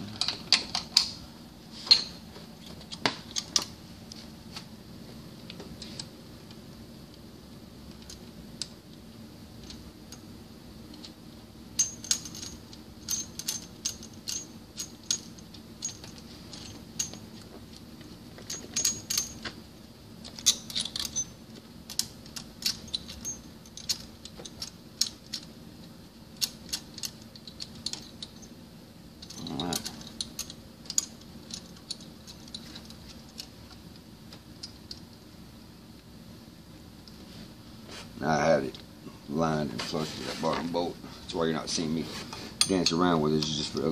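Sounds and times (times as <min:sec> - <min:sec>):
metal tools clinking on parts: 0:11.8 - 0:17.4, 0:18.4 - 0:19.5, 0:20.2 - 0:25.5, 0:29.2 - 0:33.5.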